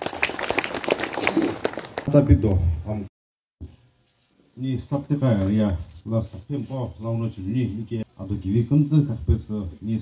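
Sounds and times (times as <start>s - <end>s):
audience applauding: 0.0s - 2.2s.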